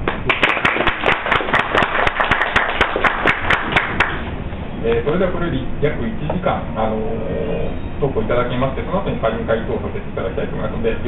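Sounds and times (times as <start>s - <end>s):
small audience applauding: 0.0s - 4.3s.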